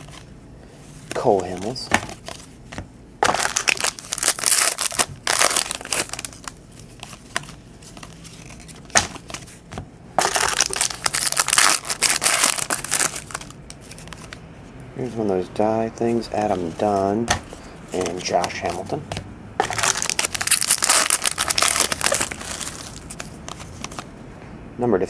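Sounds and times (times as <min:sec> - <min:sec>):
plastic wrapper crinkling: 0:03.2 - 0:09.6, 0:10.2 - 0:14.4, 0:19.6 - 0:24.1.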